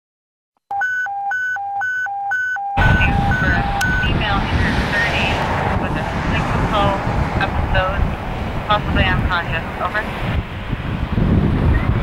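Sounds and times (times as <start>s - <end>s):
two-note electronic alert tone: 0.7s - 4.1s
person speaking: 2.8s - 8.0s
loud steady outdoor noise: 2.8s - 12.0s.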